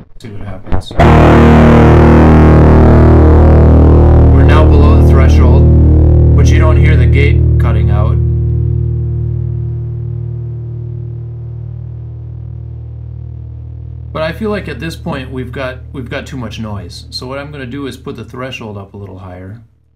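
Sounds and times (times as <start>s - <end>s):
low pickup buzz: 0.0s - 18.5s
distorted electric guitar chord: 1.0s - 15.9s.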